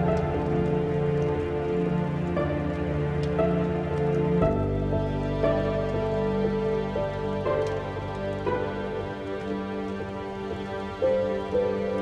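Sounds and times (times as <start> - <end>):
rain pattering: 0.0 - 12.0
slow melancholic piano music: 0.0 - 12.0.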